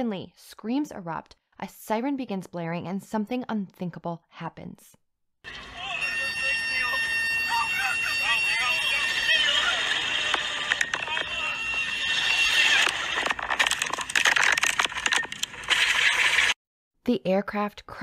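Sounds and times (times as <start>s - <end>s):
high-pitched warning alarm: 5.5s - 13.1s
people screaming: 5.5s - 13.2s
harsh crackling distorted noise: 7.8s - 16.6s.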